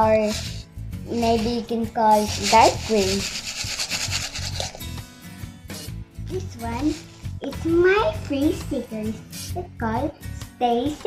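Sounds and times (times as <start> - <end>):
sprinkles rattling in plastic tub: 0.2 - 0.6, 1.2 - 4.9, 6.8 - 7.3.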